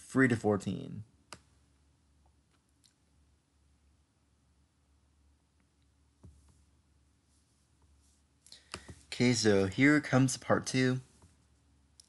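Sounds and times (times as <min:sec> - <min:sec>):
computer mouse clicks: 0:08.4 - 0:09.0.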